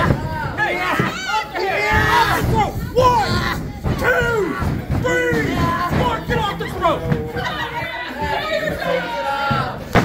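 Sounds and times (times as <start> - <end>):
people shouting and yelling: 0.0 - 10.0
small crowd: 0.0 - 10.0.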